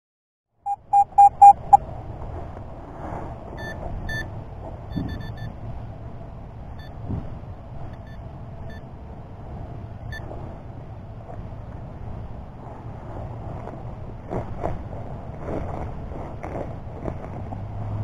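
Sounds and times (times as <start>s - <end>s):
faint high beeps: 0.7s - 1.8s
loud electronic beeps: 0.7s - 1.8s.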